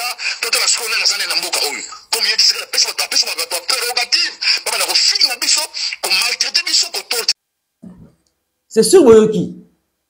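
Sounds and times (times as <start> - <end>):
person speaking: 0.0 - 9.7.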